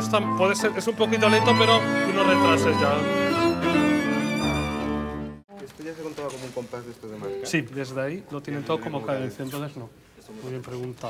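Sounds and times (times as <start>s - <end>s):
string ensemble playing: 0.0s - 5.4s.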